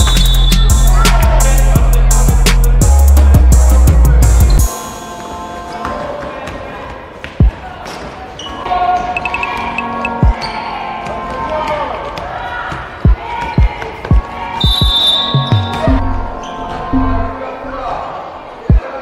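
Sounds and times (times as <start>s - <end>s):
voices in a hall: 0.0s - 19.0s.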